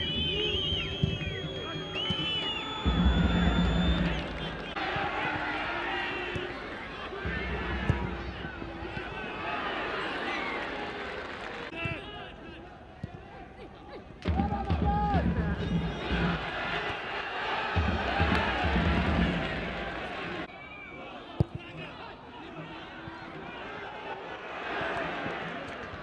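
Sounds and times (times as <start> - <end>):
players shouting: 0.0 - 26.0
stadium crowd: 0.0 - 26.0.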